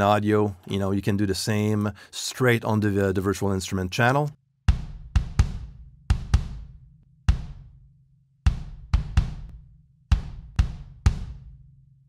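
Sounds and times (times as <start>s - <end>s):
kick drum booming: 4.7s - 7.9s, 8.5s - 11.7s.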